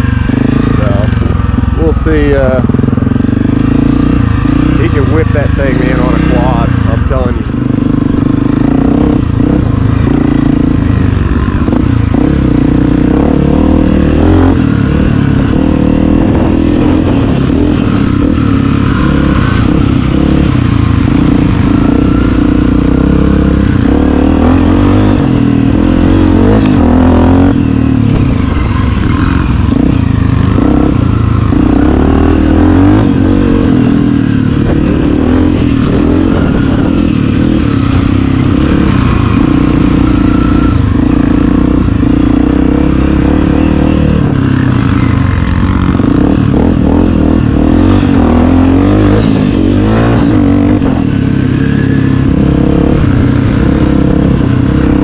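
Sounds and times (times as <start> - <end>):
dirt bike engine running: 0.0 - 55.0.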